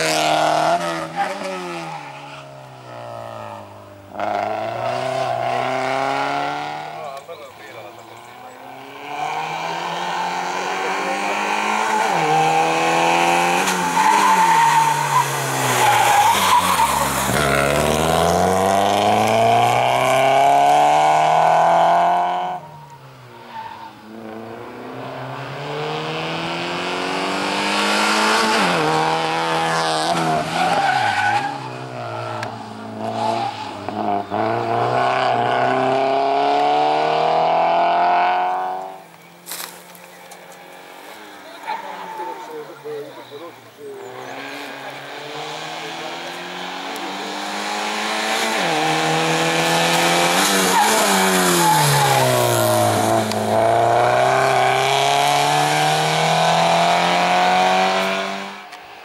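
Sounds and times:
race car engine revving: 0.0s - 22.6s, 24.1s - 39.0s, 39.9s - 58.8s
tyres squealing: 41.2s - 44.6s.

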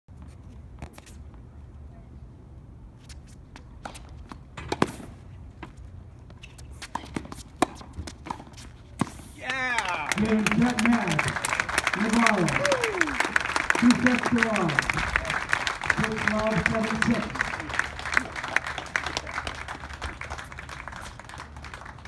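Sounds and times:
person crying out: 12.6s - 13.2s.

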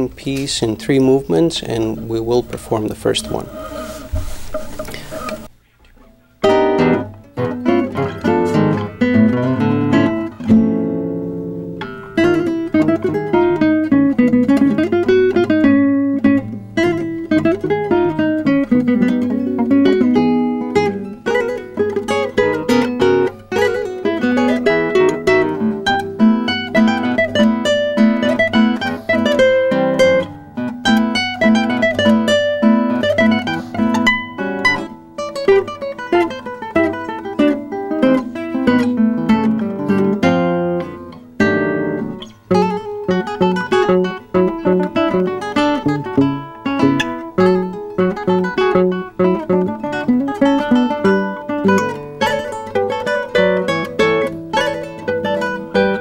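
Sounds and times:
classical guitar duet: 0.0s - 56.0s.

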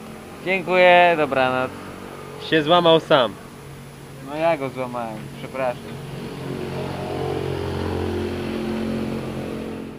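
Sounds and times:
vehicle engine running steadily: 0.0s - 9.9s.

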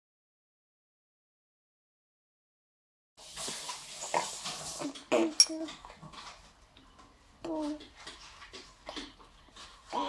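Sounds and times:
baby babbling: 4.9s - 5.8s, 7.4s - 7.8s.

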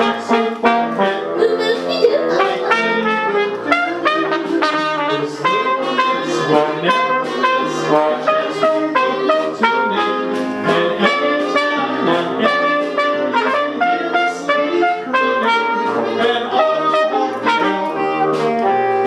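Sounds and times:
jazz band with trumpet and trombone: 0.0s - 19.0s.

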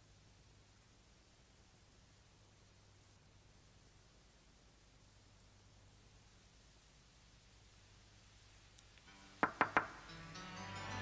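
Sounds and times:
film score music: 9.1s - 11.0s
knocks on a window pane: 9.4s - 10.0s.

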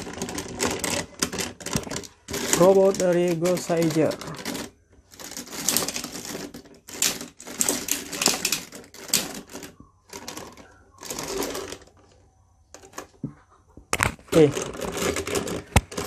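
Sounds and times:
plastic toy parts clicking: 0.0s - 11.9s.

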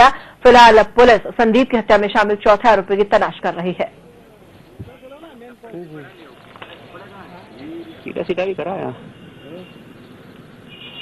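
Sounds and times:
narration: 0.0s - 10.7s.

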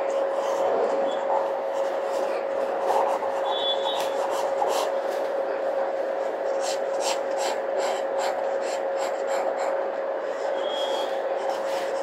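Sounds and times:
pencil scratching on paper: 0.0s - 5.2s, 6.2s - 12.0s
steady background hum: 0.0s - 12.0s.

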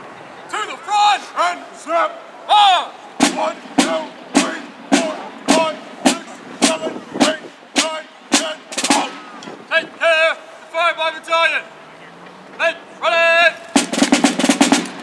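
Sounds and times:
field drum beating: 3.2s - 9.6s, 13.8s - 15.0s.

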